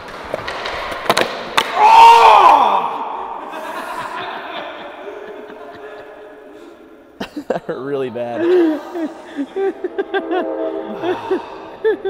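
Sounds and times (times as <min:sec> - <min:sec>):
skateboard wheels rolling on concrete: 0:00.0 - 0:01.7
skateboard impacts: 0:00.0 - 0:01.9.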